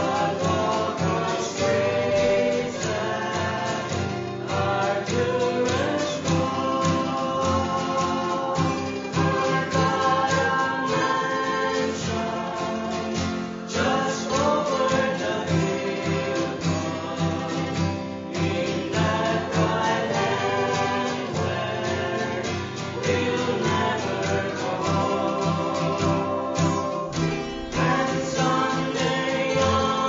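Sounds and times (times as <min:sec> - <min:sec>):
picked mandolin: 0:00.0 - 0:30.0
strummed acoustic guitar: 0:00.0 - 0:30.0
women singing in harmony: 0:00.0 - 0:30.0.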